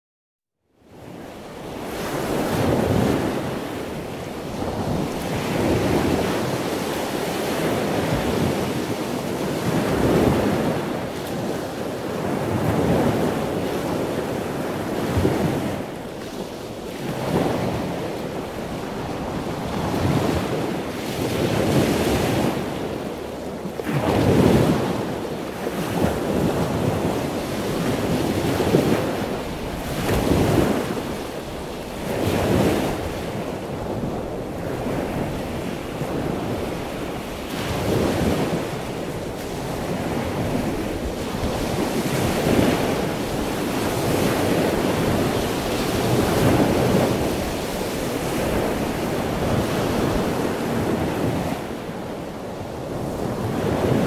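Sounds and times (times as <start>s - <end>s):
surf breaking on a beach: 0.8s - 54.0s
wind noise: 0.9s - 54.0s.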